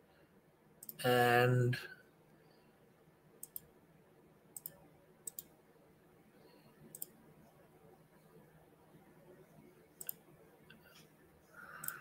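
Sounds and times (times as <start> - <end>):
computer mouse clicks: 0.8 - 1.0, 3.4 - 3.7, 4.6 - 5.5, 6.9 - 7.2, 10.0 - 11.1, 11.7 - 12.0.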